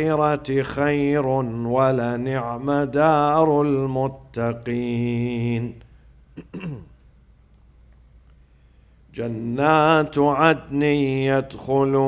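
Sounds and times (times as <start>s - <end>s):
man chanting melodically: 0.0s - 5.8s, 9.1s - 12.0s.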